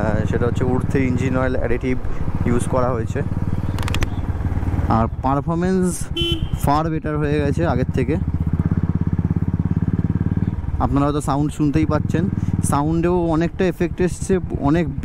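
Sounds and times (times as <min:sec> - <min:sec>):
motorcycle engine thumping: 0:03.3 - 0:04.9.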